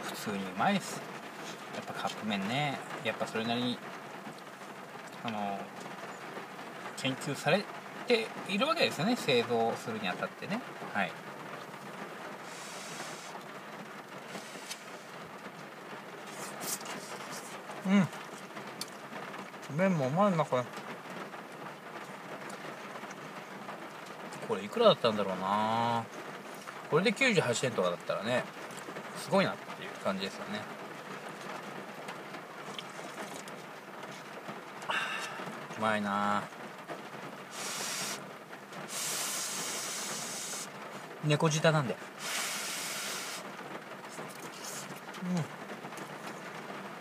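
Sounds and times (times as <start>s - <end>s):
steady background hiss: 0.0s - 47.0s
airy breath-like rush: 12.4s - 13.4s, 14.3s - 15.2s, 34.9s - 35.6s, 38.9s - 40.7s, 42.2s - 43.4s.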